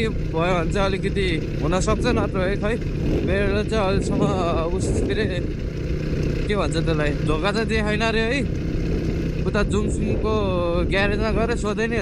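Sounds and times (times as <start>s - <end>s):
man talking: 0.0s - 5.5s, 6.4s - 8.5s, 9.4s - 12.0s
dirt bike engine running: 0.0s - 12.0s
road and wind noise: 0.0s - 12.0s.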